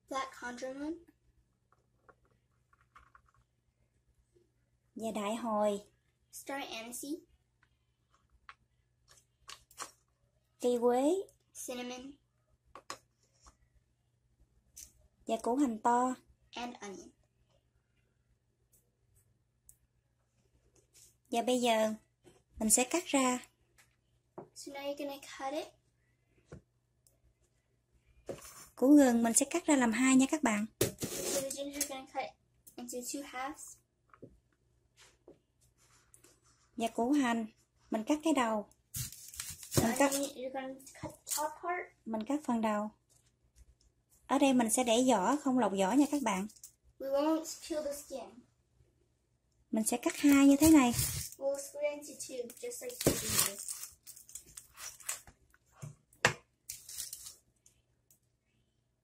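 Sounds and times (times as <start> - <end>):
woman speaking: 49.7 - 51.1.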